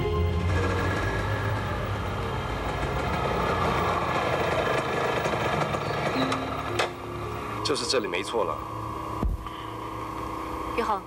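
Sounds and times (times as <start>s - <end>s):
small motorcycle engine running: 0.0s - 8.6s.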